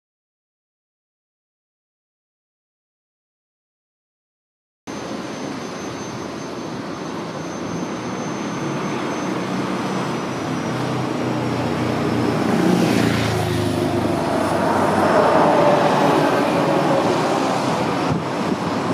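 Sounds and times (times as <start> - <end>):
steady engine whine: 4.9 - 18.9
street traffic noise: 4.9 - 18.9
vehicle passing close: 8.7 - 18.9.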